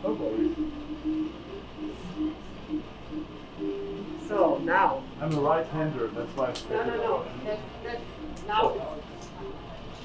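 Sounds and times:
faint murmur of voices: 0:00.0 - 0:10.0
steady low hum: 0:00.0 - 0:10.0.

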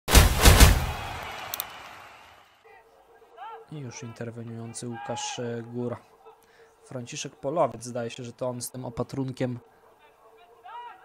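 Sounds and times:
heavy hits: 0:00.1 - 0:01.4.

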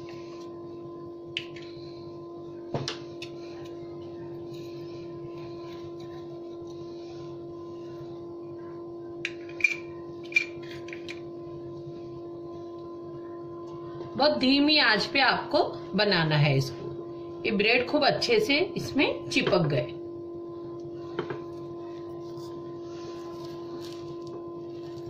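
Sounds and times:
steady hum: 0:00.0 - 0:25.0.

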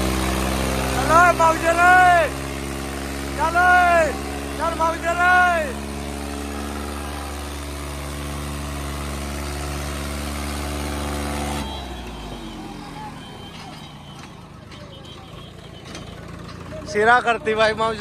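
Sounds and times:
tractor diesel engine under load: 0:00.0 - 0:18.0.

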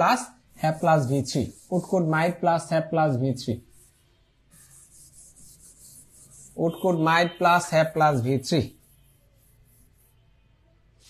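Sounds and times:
man speaking: 0:00.0 - 0:03.6, 0:06.6 - 0:08.7
stylus scratching on glass: 0:00.5 - 0:02.4, 0:03.3 - 0:10.2.

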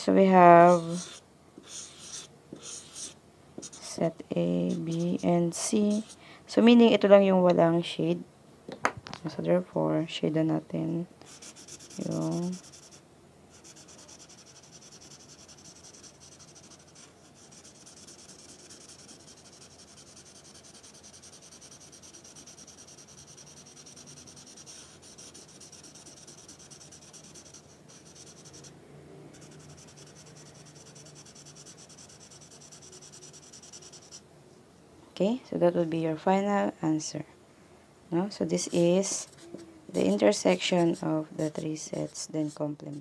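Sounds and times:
marker scratching on paper: 0:00.4 - 0:06.2, 0:11.3 - 0:13.0, 0:13.6 - 0:28.7, 0:29.3 - 0:34.2, 0:38.6 - 0:43.0.

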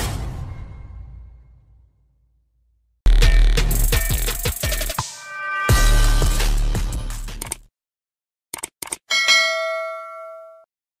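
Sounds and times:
bell ding chime: 0:09.1 - 0:10.7.

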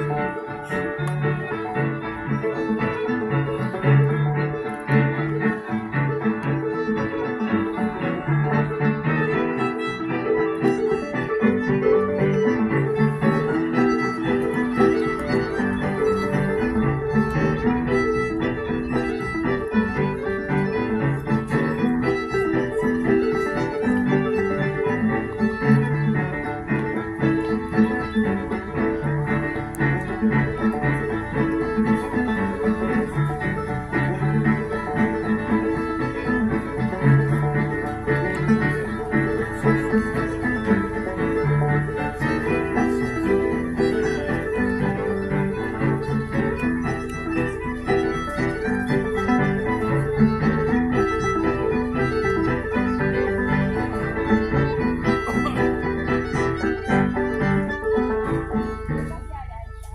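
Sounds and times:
amplified fiddle tune: 0:00.0 - 0:59.9
keyboard accompaniment: 0:00.0 - 0:59.9.

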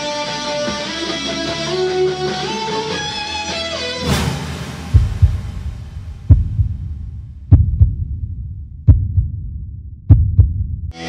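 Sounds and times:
heartbeat thumps: 0:04.9 - 0:10.9.

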